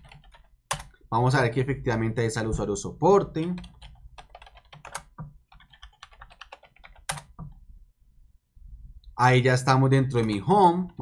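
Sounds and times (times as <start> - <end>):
computer keyboard typing: 0.0 - 1.0, 3.4 - 7.6.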